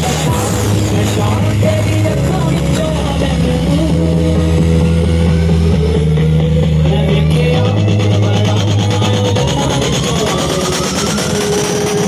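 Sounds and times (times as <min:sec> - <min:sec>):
deep bass note: 0:00.0 - 0:12.0
steady synth tone: 0:00.0 - 0:12.0
drum beat: 0:07.6 - 0:12.0.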